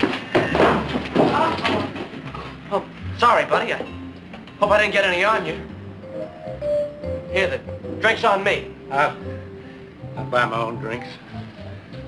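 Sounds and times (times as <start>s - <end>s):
scuffle: 0.0s - 2.6s.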